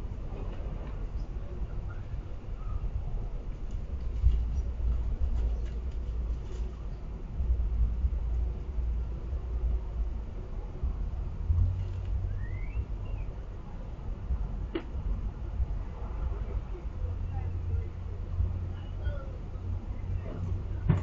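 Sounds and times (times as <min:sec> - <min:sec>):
low outdoor rumble: 0:00.0 - 0:21.0
bird chirp: 0:12.3 - 0:13.4.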